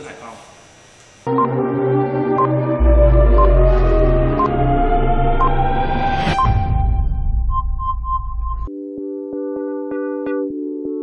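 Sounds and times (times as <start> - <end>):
steady electronic tones: 1.3 - 8.7
low electronic drone: 1.5 - 8.7
rising whoosh: 2.6 - 8.7
short beeps: 6.3 - 8.7.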